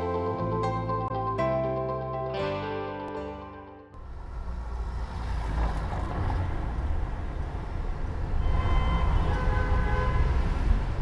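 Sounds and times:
rumble of passing vehicles: 0:04.0 - 0:11.0.

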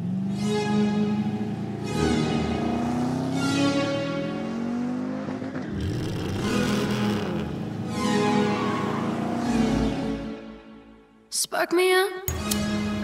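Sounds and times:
car engine revving past: 0:01.2 - 0:10.2.

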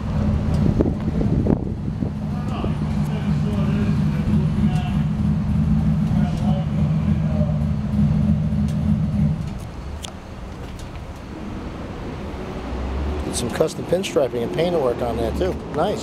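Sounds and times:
vehicle engine running: 0:00.0 - 0:16.0.

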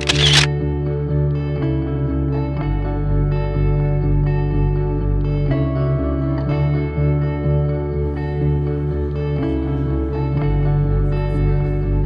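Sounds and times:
camera shutter click: 0:00.0 - 0:00.5
instrumental music with bass: 0:00.0 - 0:12.0.

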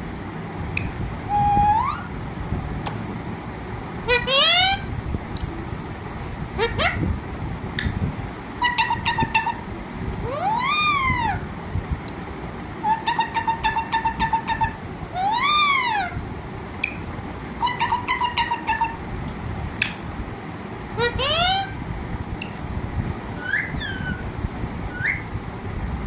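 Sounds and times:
parakeet long rising falling call: 0:01.3 - 0:02.1
parakeet squawking: 0:01.3 - 0:02.1, 0:04.0 - 0:04.9, 0:06.6 - 0:07.0, 0:08.6 - 0:09.6, 0:10.2 - 0:11.4, 0:12.8 - 0:16.2, 0:17.6 - 0:19.0, 0:21.0 - 0:21.8, 0:23.4 - 0:24.3, 0:24.9 - 0:25.3.

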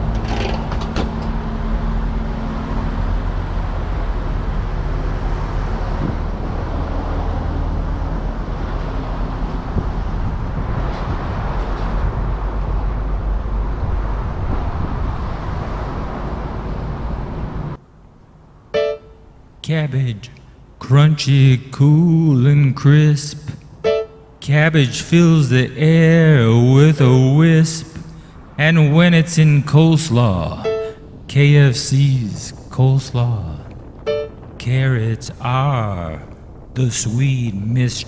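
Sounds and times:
car engine hum: 0:00.0 - 0:19.7, 0:25.1 - 0:34.7
road noise inside car: 0:00.0 - 0:37.9.

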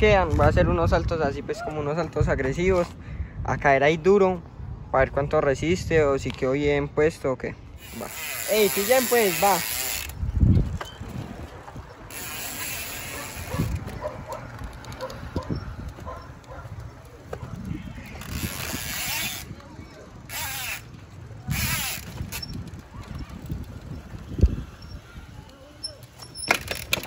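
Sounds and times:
rushing tyre or wind noise: 0:09.4 - 0:25.5.

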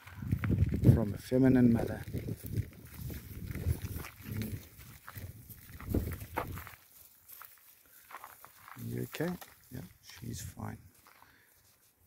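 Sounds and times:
cattle lowing: 0:03.2 - 0:06.3.

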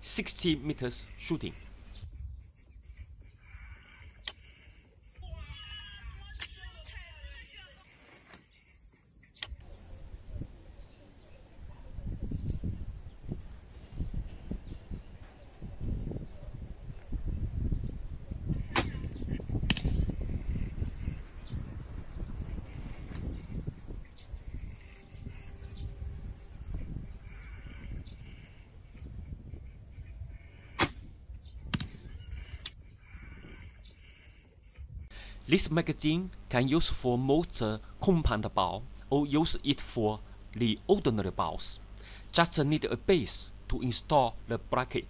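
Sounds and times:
bow string snapping: 0:18.7 - 0:19.0.

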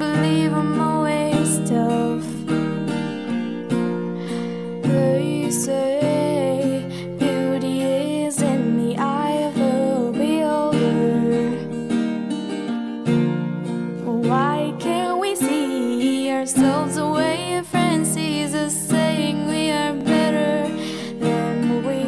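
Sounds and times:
woman singing: 0:00.0 - 0:12.8, 0:13.8 - 0:22.0
acoustic guitar strumming: 0:00.0 - 0:22.0.

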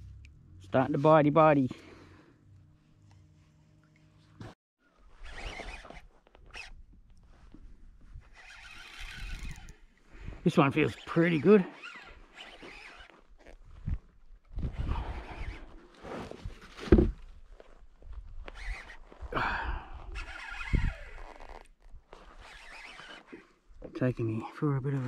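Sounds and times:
rasping reel buzz: 0:08.3 - 0:09.9, 0:10.9 - 0:13.1, 0:20.1 - 0:21.7, 0:22.4 - 0:23.4
fishing rod rustles and knocks: 0:15.7 - 0:18.8.

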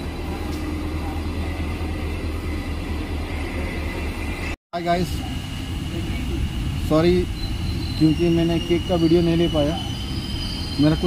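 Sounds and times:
train low rumble: 0:00.0 - 0:11.0.

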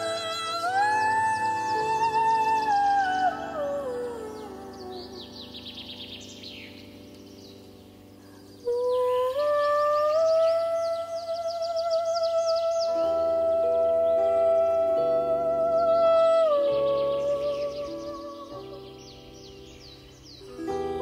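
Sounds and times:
woman singing wordless lullaby: 0:00.0 - 0:06.1, 0:08.4 - 0:19.3, 0:20.4 - 0:21.0
birds chirping: 0:00.0 - 0:21.0
plucked bandura strings: 0:20.4 - 0:21.0.

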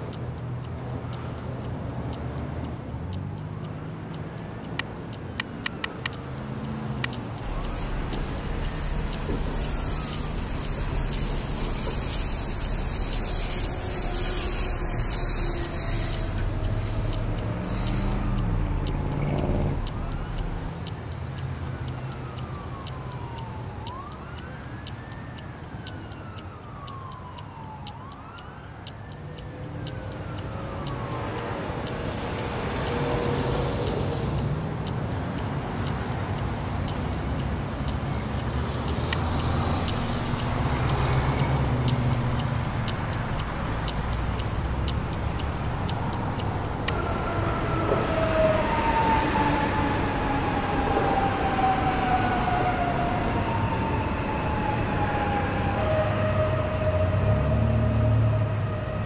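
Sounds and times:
clock-like ticking: 0:00.0 - 0:47.0
emergency siren wailing: 0:01.0 - 0:36.2, 0:39.0 - 0:59.0.

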